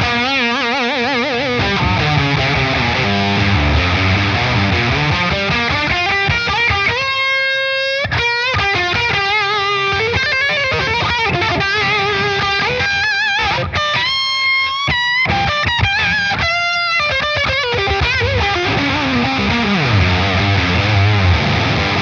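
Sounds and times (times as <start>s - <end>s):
fuzzy electric guitar lead: 0.0s - 22.0s.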